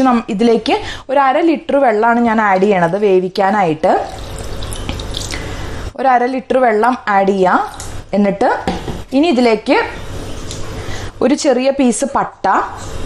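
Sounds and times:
woman talking: 0.0 - 4.2, 6.0 - 10.0, 11.2 - 12.8
water pouring from a jug: 3.8 - 5.9.

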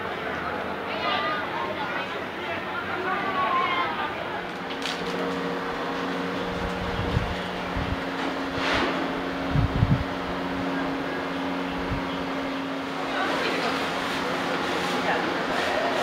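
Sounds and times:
low mechanical hum: 0.0 - 16.0.

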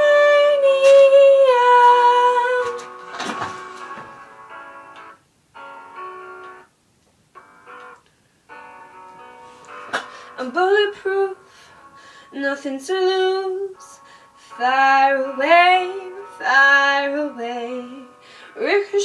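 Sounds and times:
instrumental backing track: 0.0 - 19.0
brief rustle: 2.7 - 4.1.

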